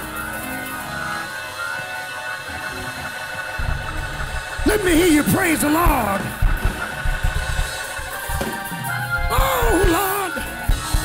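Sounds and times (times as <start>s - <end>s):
sustained keyboard chords: 0.0s - 11.0s
bass line: 2.5s - 11.0s.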